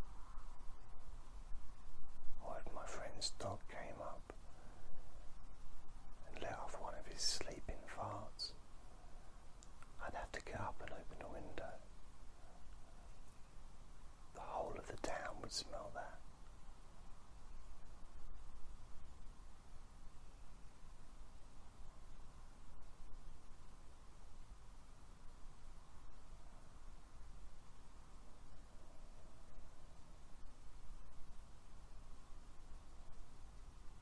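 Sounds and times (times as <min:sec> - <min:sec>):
person whispering: 0:02.4 - 0:04.5, 0:06.2 - 0:08.6, 0:09.9 - 0:11.9, 0:14.4 - 0:16.2.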